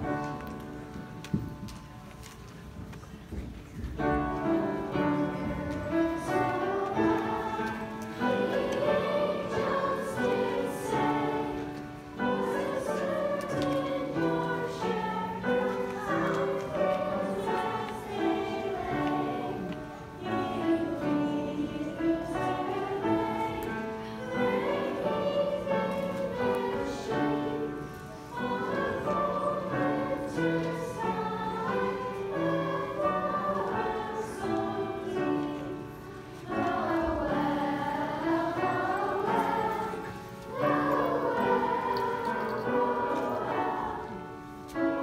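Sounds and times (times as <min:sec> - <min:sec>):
children's choir singing: 0:00.0 - 0:45.0.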